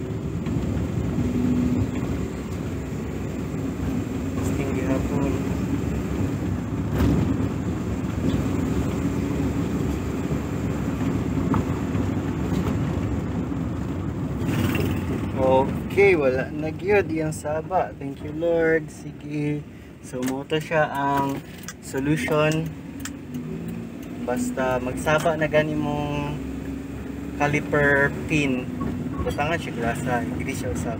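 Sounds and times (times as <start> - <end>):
road and engine noise in cabin: 0.0 - 30.9.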